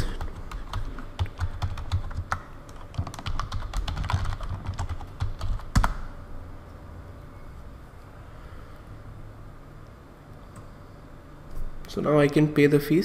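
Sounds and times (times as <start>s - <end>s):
typing on computer keyboard: 0.0s - 6.1s.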